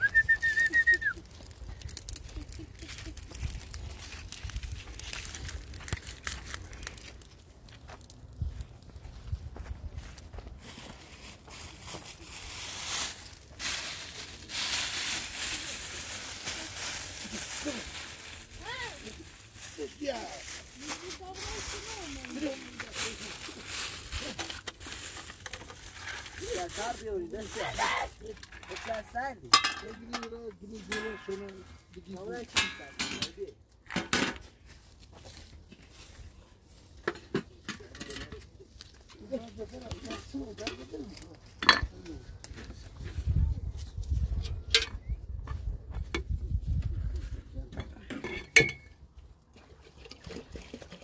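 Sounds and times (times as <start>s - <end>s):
short high whistle-like tone: 0.0s - 1.2s
plastic bag crinkling: 0.5s - 8.3s, 11.0s - 29.2s.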